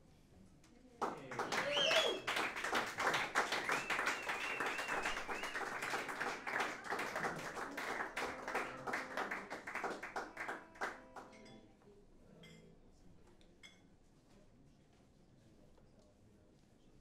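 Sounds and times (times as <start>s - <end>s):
audience applause: 1.1s - 11.2s.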